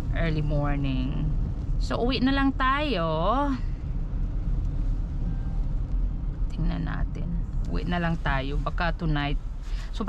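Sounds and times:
car driving on wet road: 0.0s - 10.0s.

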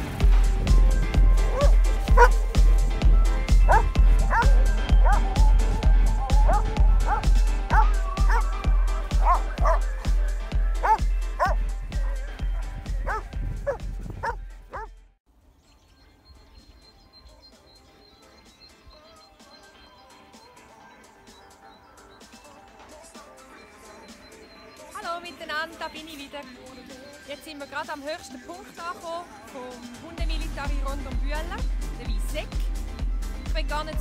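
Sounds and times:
music with heavy beat: 0.0s - 13.1s
dogs barking and yipping: 1.3s - 2.6s, 3.4s - 15.0s.

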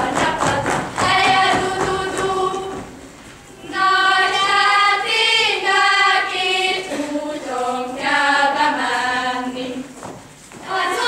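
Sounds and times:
girls singing a folk song: 0.0s - 11.0s.

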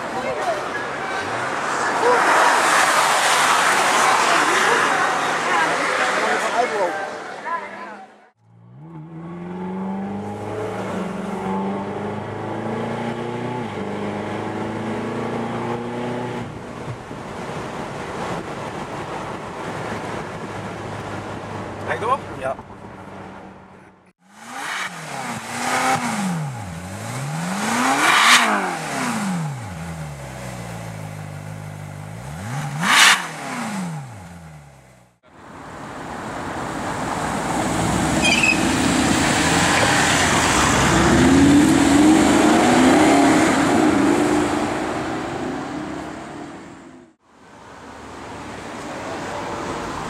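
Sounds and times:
engine and road noise rushing: 0.0s - 50.0s
car engine revving: 8.4s - 16.6s, 24.2s - 35.2s, 37.4s - 47.2s.

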